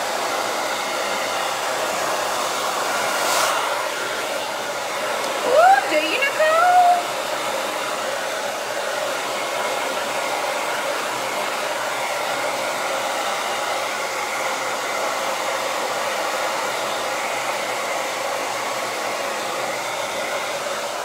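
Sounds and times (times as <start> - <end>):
hair dryer blowing: 0.0 - 21.0.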